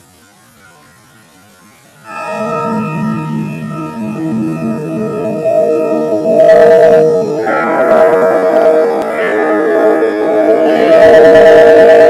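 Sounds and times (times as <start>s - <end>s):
distorted eerie drone: 1.7s - 12.0s.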